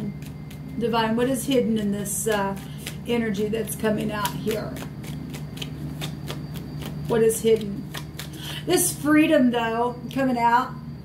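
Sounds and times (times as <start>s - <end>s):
cards being shuffled: 1.5s - 3.1s, 4.0s - 8.4s.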